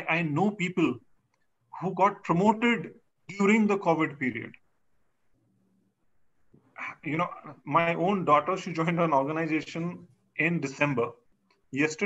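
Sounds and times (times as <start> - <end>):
man talking: 0.0 - 1.1, 1.7 - 4.6, 6.7 - 12.0.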